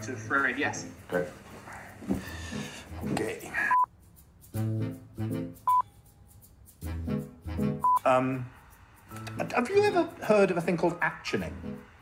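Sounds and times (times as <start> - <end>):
sharp high beep: 5.7 - 5.9.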